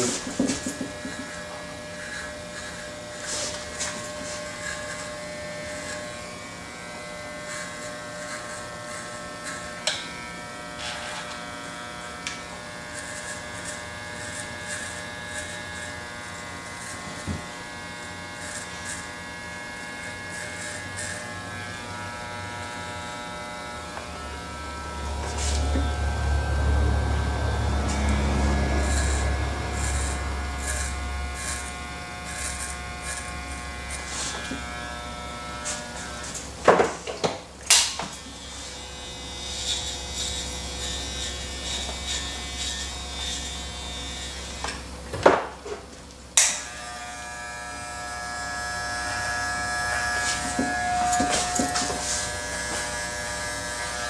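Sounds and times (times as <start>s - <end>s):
electric hair clippers buzzing: 0.0s - 45.6s, 46.3s - 54.0s.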